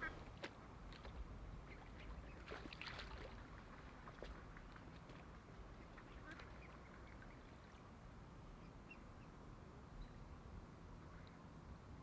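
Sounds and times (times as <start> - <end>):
soft swan calls: 0.0 - 0.3, 5.7 - 7.8.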